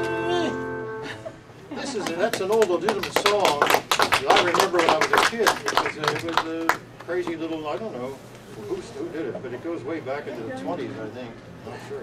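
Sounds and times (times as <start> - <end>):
audience clapping: 2.0 - 7.5.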